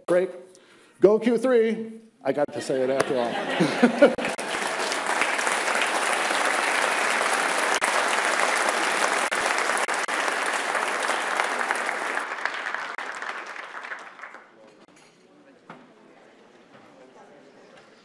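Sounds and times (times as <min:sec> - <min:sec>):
audience applauding: 0:03.5 - 0:14.8.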